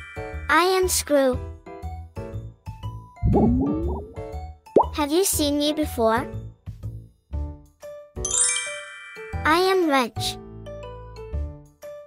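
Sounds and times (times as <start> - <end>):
short low musical notes: 3.2 - 4.2.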